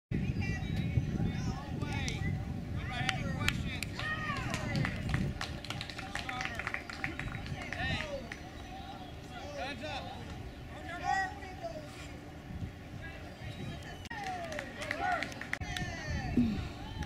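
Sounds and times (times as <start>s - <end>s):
indistinct chatter of people: 0.1s - 17.0s.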